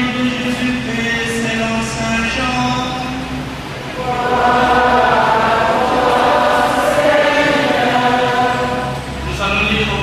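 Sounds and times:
choir singing slow chant: 3.9s - 9.3s.

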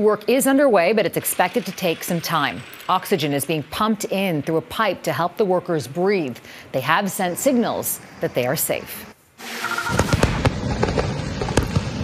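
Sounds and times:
firecracker bangs: 9.8s - 12.0s
continuous fireworks crackling: 9.9s - 12.0s.

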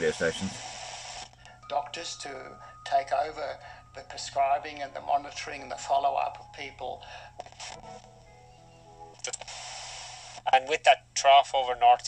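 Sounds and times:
radio noise bursts: 0.0s - 1.4s, 9.2s - 10.5s
music from radio speaker: 0.0s - 10.7s.

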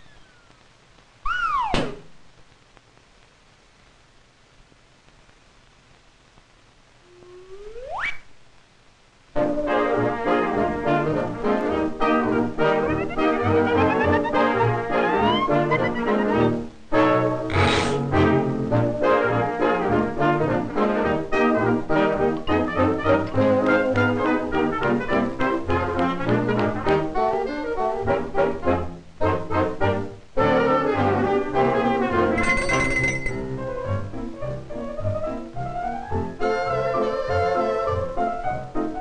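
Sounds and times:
brass-led orchestral cartoon music: 9.4s - 32.5s, 33.5s - 39.0s.

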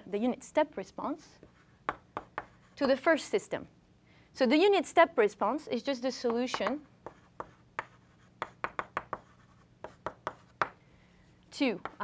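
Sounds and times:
chalk tapping and scraping on blackboard: 1.4s - 2.8s, 6.2s - 10.8s.

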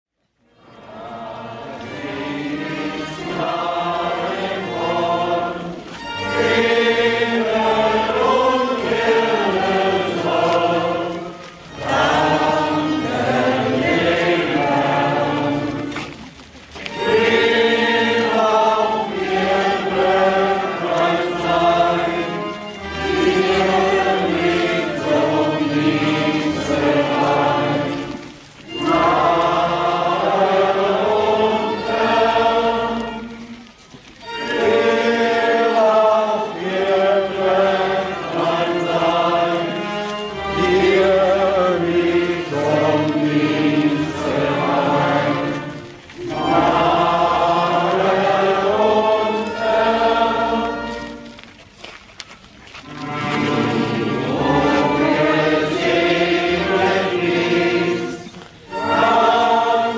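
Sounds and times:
choir singing a hymn: 0.6s - 51.5s, 52.8s - 59.9s.

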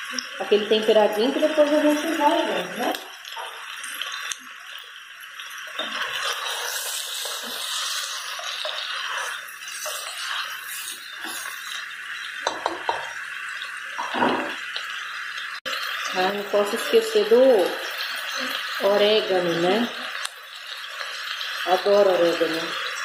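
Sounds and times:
meat sizzling in a pot: 0.0s - 23.0s
spoon scraping a pot: 5.8s - 11.8s.

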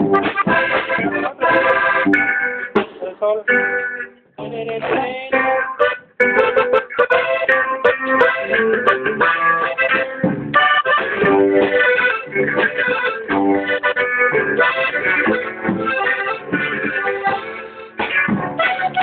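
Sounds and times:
instrumental music: 0.0s - 19.0s.

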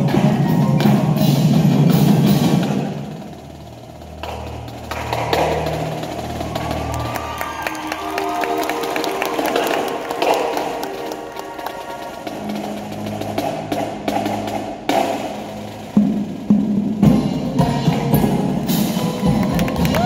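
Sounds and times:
percussion ensemble playing: 0.0s - 20.0s.

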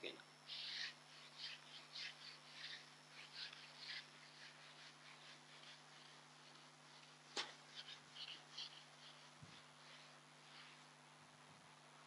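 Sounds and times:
eraser swishing on whiteboard: 0.4s - 11.0s.

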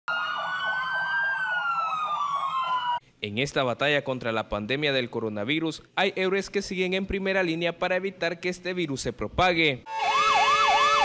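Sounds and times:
ambulance siren: 0.0s - 3.0s, 9.9s - 11.0s.

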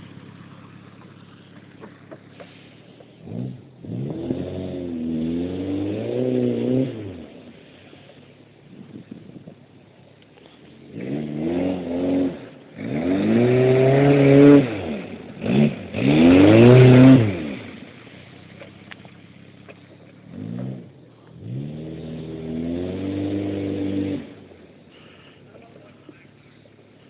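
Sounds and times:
car engine revving: 0.0s - 27.0s.

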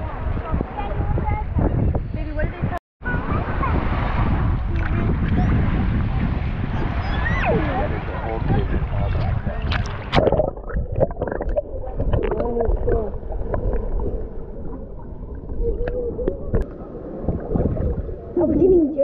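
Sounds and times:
faint muffled voices: 0.0s - 10.0s
underwater rumbling and gurgling: 3.0s - 19.0s
clicks underwater: 9.1s - 18.1s.

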